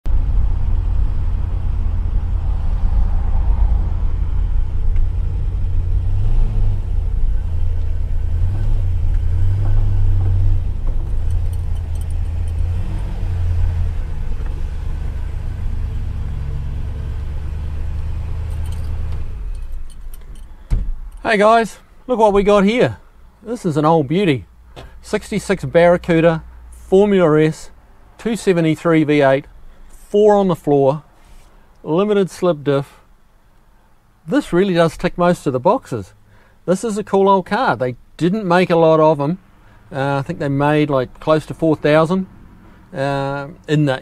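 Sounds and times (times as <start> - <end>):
car engine low rumble: 0.0 - 31.3, 33.0 - 44.0.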